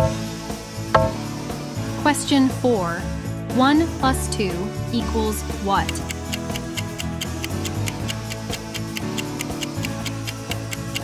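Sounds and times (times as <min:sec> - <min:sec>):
light background music: 0:00.0 - 0:11.0
countdown timer ticking: 0:01.0 - 0:01.2, 0:05.8 - 0:11.0.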